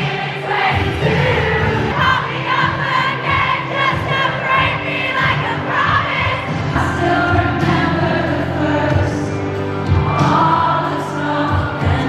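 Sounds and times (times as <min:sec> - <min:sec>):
live pop music over sound system: 0:00.0 - 0:12.0
stadium crowd singing along: 0:00.0 - 0:12.0.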